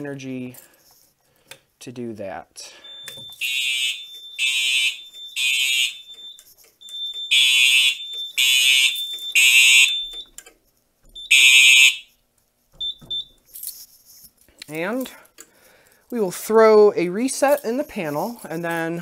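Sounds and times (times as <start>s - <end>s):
fire alarm horn blasts: 2.8s - 10.3s, 11.2s - 12.2s.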